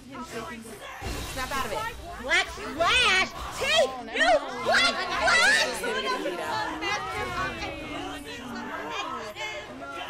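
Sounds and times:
voices talking over one another: 0.0s - 10.0s.

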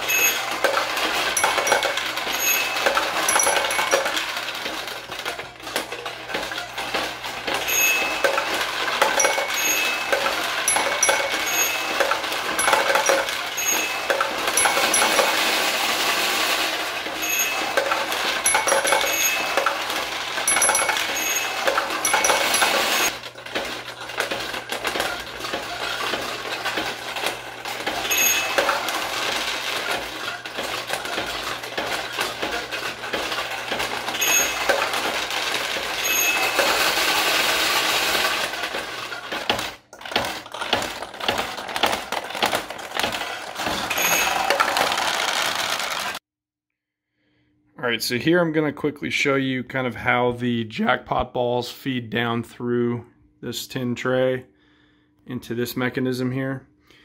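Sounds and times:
short ringing tones: 0.0s - 4.4s, 7.6s - 15.8s, 17.1s - 23.1s, 28.0s - 29.6s, 34.1s - 37.5s, 43.9s - 44.6s
steel balls clattering through pins: 0.0s - 46.2s.

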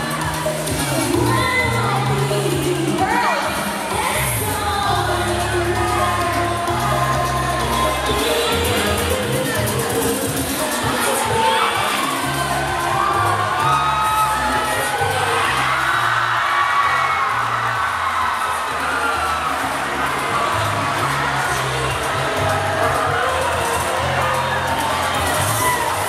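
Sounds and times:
crowd cheering and shouting: 0.0s - 26.0s
music with bass beat: 0.0s - 26.0s.

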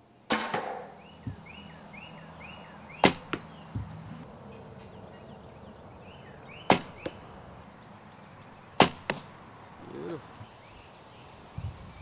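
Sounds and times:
bird chirping: 0.7s - 12.0s
arrow striking target: 3.0s - 3.4s, 6.7s - 7.0s, 8.8s - 9.3s.

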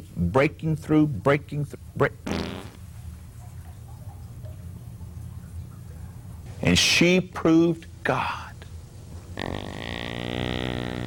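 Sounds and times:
low buzzing fart sound: 2.2s - 2.9s, 9.2s - 11.0s.

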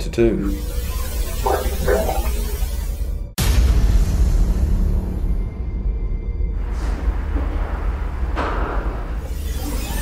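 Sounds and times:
deep rumbling drone: 3.8s - 9.9s.

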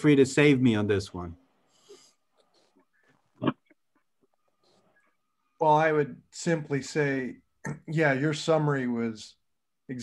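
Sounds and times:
online meeting background: 0.0s - 10.0s.

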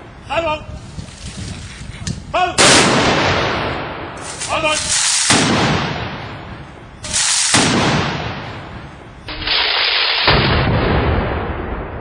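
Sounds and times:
rifle volley blast: 2.6s - 12.0s.

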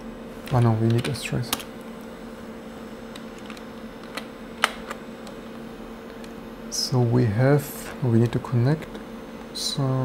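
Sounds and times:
computer fans humming: 0.0s - 10.0s.

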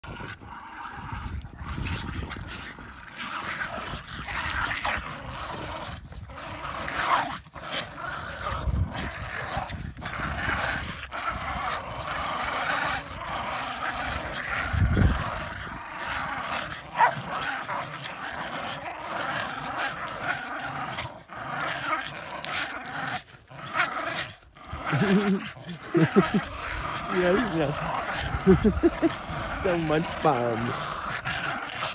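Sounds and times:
small dogs growling: 0.0s - 31.9s.

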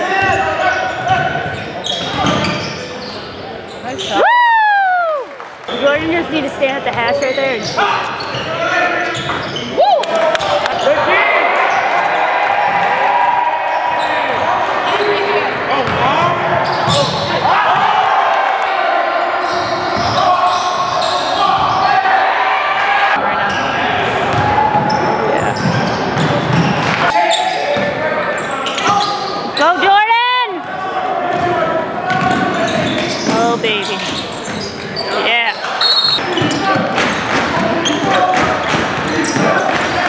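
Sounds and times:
sneakers squeaking on floor: 0.0s - 4.2s, 5.7s - 9.8s, 13.7s - 17.4s, 19.3s - 22.1s, 23.3s - 29.9s, 30.6s - 40.0s
spectators talking and cheering: 0.0s - 40.0s
basketball bouncing on court: 15.8s - 17.8s, 24.3s - 26.9s, 31.3s - 34.7s.

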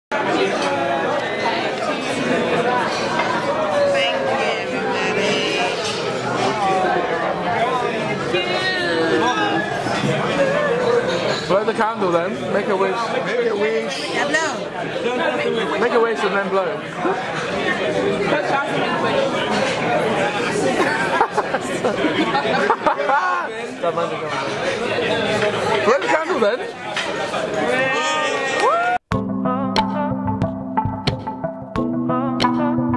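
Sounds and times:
chatter of many voices: 0.1s - 29.0s
people laughing: 20.4s - 23.6s.

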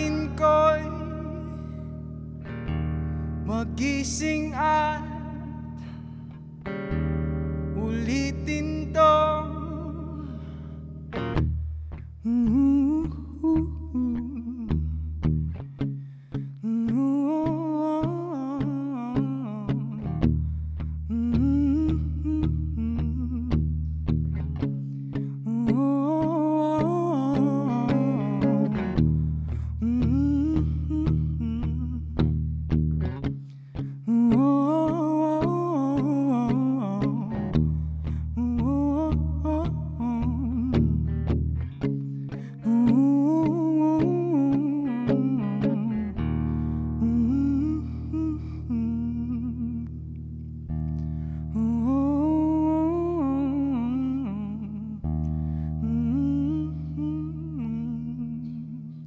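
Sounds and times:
electric guitar chord and notes: 0.0s - 58.8s
wavering hummed vocal: 12.2s - 15.6s, 21.0s - 24.1s, 25.4s - 32.4s, 34.0s - 59.0s.

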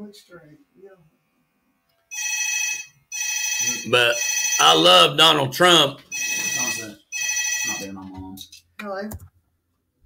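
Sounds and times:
phone ringtone: 2.1s - 5.1s, 6.1s - 8.0s.

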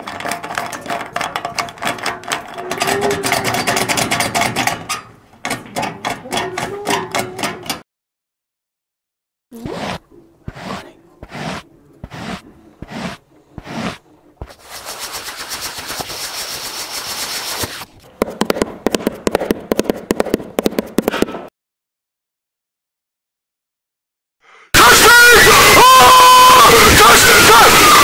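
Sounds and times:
gate creaking: 0.0s - 7.8s
rusted gate rattling: 0.0s - 7.8s.

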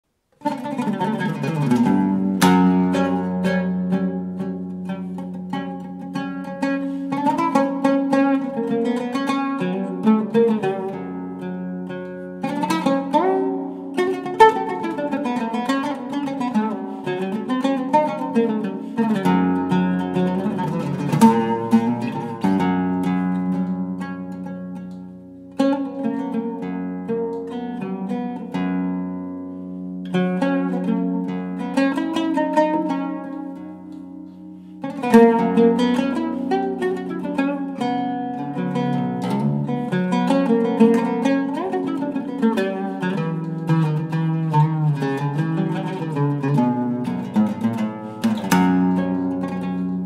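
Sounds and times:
solo oud improvising: 0.1s - 50.0s.

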